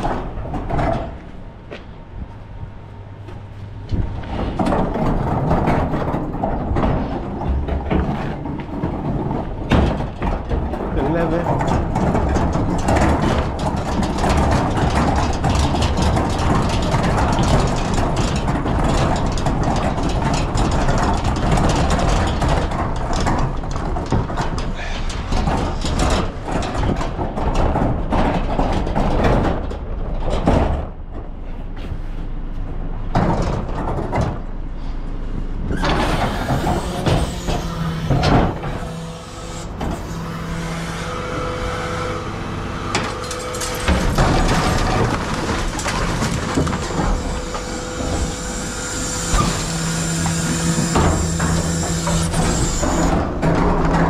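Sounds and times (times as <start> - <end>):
wheelie bin rattling over tarmac: 3.9 - 31.8, 35.7 - 54.0.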